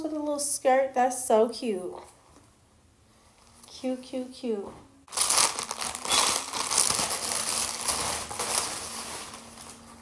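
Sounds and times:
plastic bag crinkling: 5.1 - 10.0.

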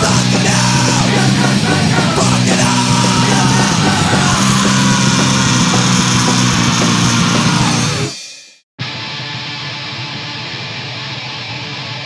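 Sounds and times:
heavy rock music: 0.0 - 12.0.

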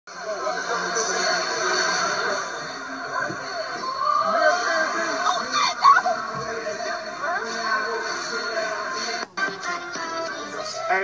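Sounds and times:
indistinct voices: 0.1 - 11.0
music from computer speakers: 0.2 - 11.0.

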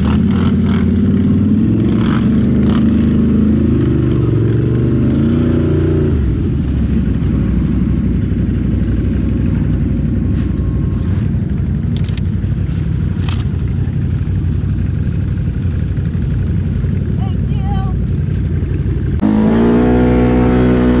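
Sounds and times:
atv engine revving and idling: 0.0 - 21.0.

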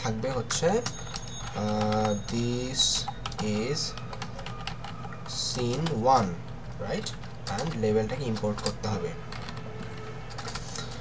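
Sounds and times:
computer keyboard keystrokes: 0.3 - 11.0.

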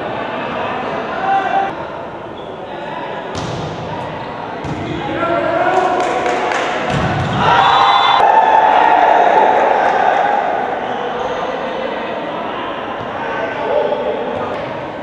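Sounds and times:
players and spectators shouting: 0.0 - 1.8, 3.8 - 15.0
volleyball struck with thuds: 3.3 - 5.0, 6.9 - 7.5
crowd cheering: 4.9 - 14.2.

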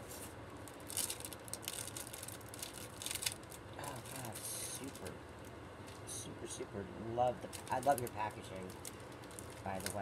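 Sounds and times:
plastic and paper crinkling: 0.0 - 5.1, 7.4 - 10.0.

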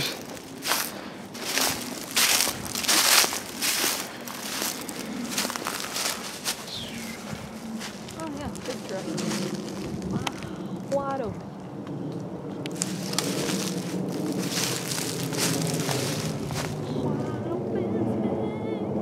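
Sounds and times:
footsteps crunching on pine needles: 0.0 - 17.3
shuffling footsteps: 0.0 - 17.4.

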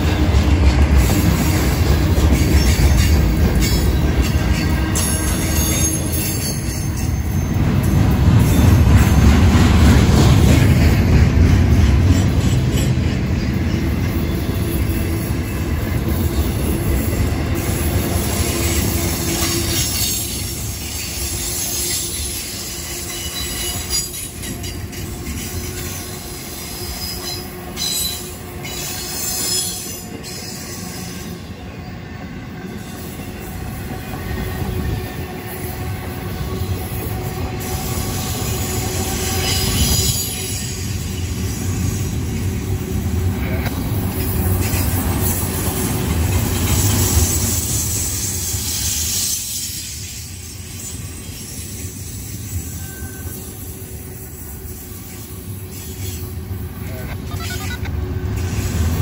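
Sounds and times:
freight train wheels on rails: 0.0 - 59.0
wheel squeal: 47.0 - 53.6.

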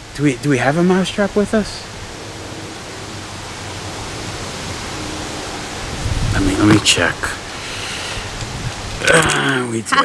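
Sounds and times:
wind rushing over microphone: 0.0 - 9.2.

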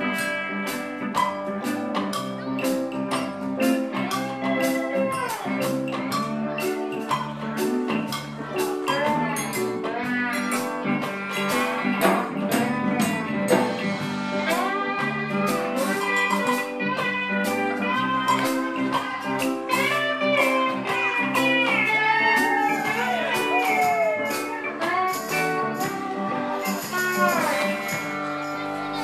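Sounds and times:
bass guitar: 0.0 - 29.0
drums: 0.0 - 29.0
electric guitar lead: 0.0 - 29.0.

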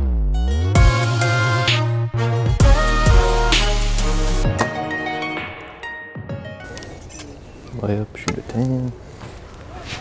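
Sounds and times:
background music: 0.0 - 7.4
outdoor ambience: 6.4 - 10.0.

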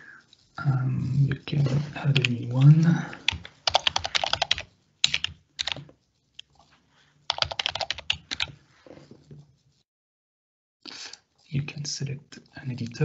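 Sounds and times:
typing on computer keyboard: 2.2 - 5.9, 7.3 - 8.6.

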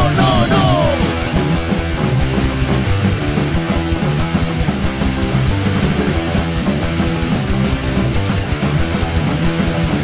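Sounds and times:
bass guitar: 0.0 - 10.0
drums: 0.0 - 10.0
electric guitars: 0.0 - 10.0.

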